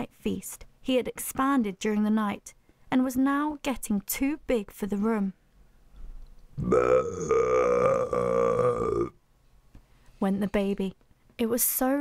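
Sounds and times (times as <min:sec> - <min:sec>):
person belching cough: 0:06.6 - 0:09.1.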